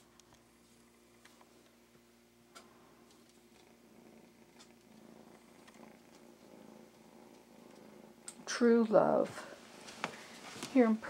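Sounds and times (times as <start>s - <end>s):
kitten purring: 0.0s - 11.0s
faint clicks: 2.5s - 3.8s, 4.5s - 8.4s.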